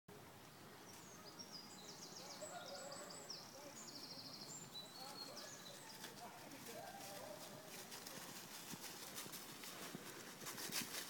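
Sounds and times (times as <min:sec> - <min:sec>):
songbirds singing: 0:00.2 - 0:08.2.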